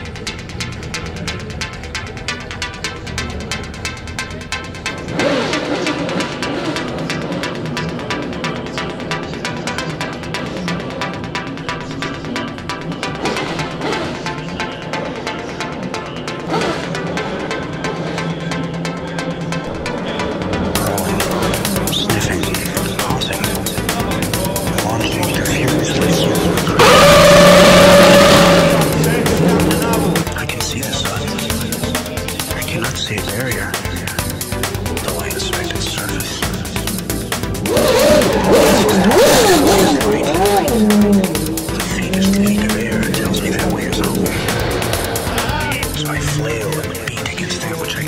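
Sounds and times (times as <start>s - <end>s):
electronic music with fast beat: 0.0s - 48.0s
race car high-pitched engine: 0.0s - 48.0s.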